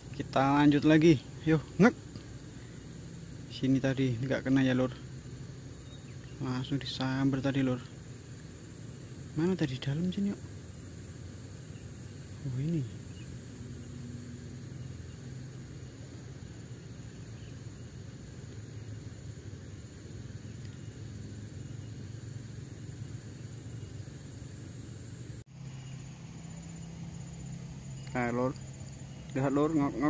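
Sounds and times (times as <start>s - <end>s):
constant low hum: 0.0s - 30.0s
faint high insect chirring: 0.0s - 30.0s.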